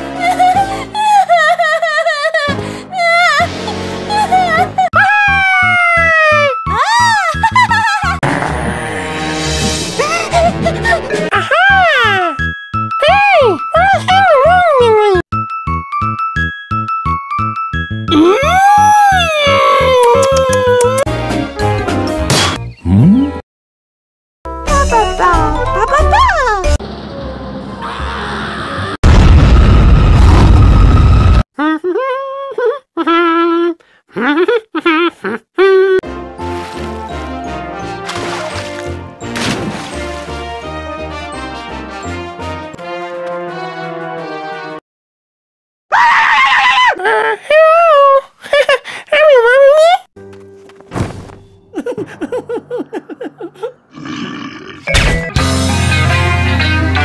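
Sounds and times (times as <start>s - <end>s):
raspy creature growl: 8.2s - 9.4s, 53.7s - 54.9s
cartoon voice giggling nervously: 10.0s - 11.5s
cartoon rocket thrust rumble: 29.0s - 31.4s.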